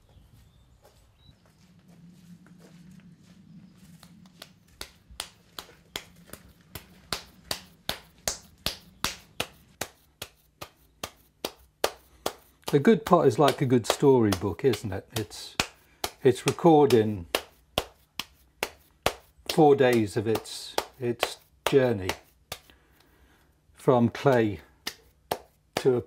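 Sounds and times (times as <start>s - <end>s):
faint low hum: 0.0s - 9.8s
sharp taps: 4.2s - 22.7s.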